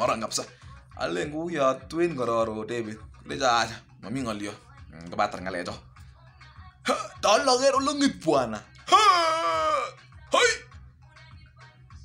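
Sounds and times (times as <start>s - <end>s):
man's loud vocal cry: 8.9s - 10.6s.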